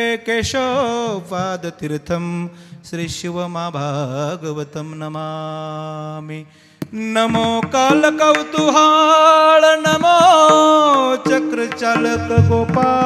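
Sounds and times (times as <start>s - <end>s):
man chanting over microphone: 0.0s - 13.0s.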